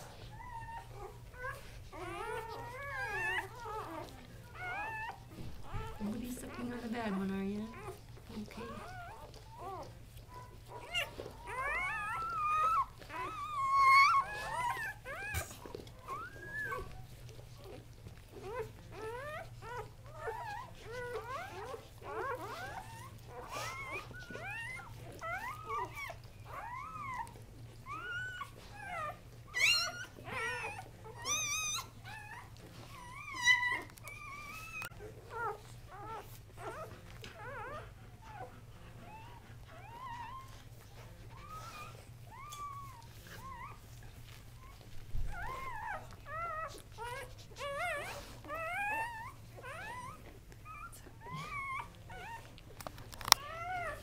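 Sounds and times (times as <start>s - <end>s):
puppies squeaking and whimpering: 0.0s - 54.0s.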